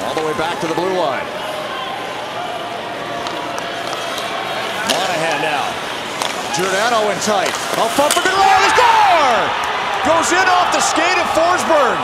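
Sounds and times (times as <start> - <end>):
arena crowd noise: 0.0 - 12.0
hockey sticks clacking on puck: 3.2 - 8.9.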